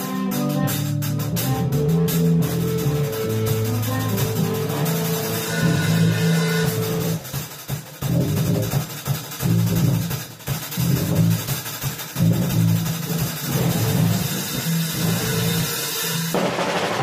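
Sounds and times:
bass line: 0.0 - 7.3, 8.0 - 16.4
cymbals: 0.0 - 17.0.

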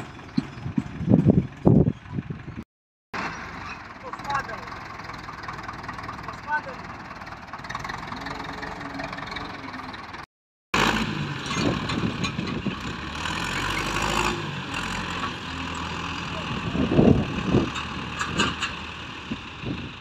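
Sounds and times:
tractor diesel engine under load: 0.0 - 2.6, 3.2 - 20.0.

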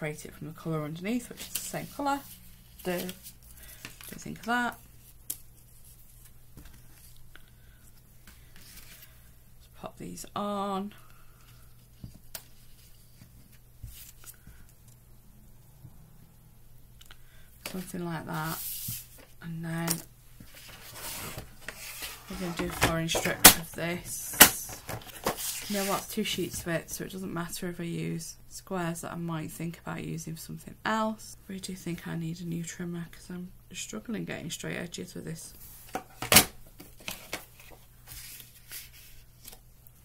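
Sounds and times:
cardstock sheets rustling: 1.1 - 7.2, 8.2 - 9.3, 17.6 - 19.3, 19.9 - 26.6, 35.8 - 39.7
paper sliding and rubbing: 18.4 - 19.3, 20.5 - 22.6, 25.1 - 26.1, 37.6 - 39.6.

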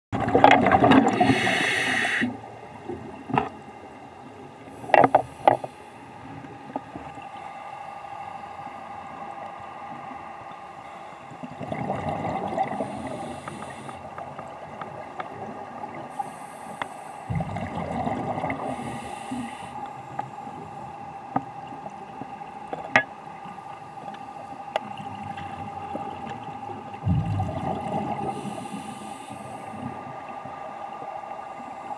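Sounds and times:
underwater bubbling: 0.2 - 31.9
scuba regulator breathing: 1.1 - 2.4, 12.7 - 14.2, 16.1 - 17.3, 18.6 - 20.4, 28.2 - 30.0.

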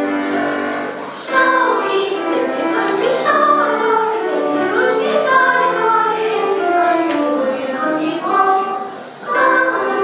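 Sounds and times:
girls singing together: 0.0 - 10.0.

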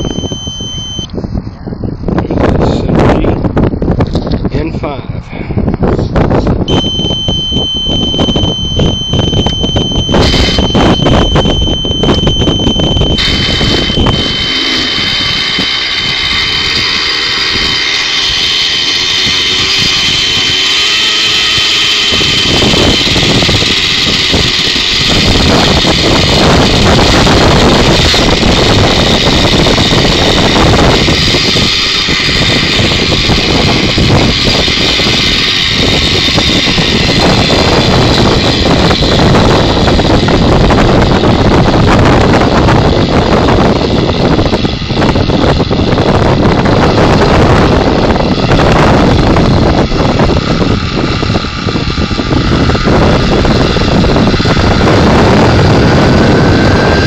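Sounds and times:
model helicopter engine running: 0.0 - 0.4, 6.2 - 57.0
electric starter cranking: 6.6 - 57.0.

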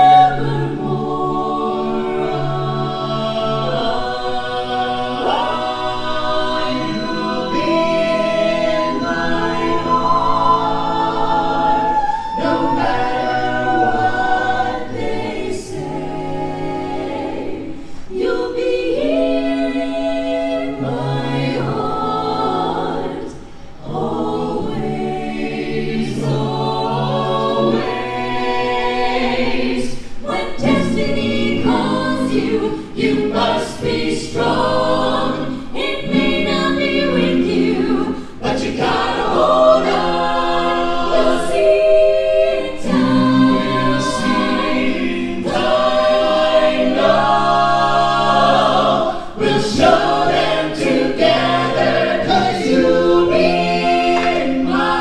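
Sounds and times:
vocal ensemble singing in harmony: 0.0 - 55.0.

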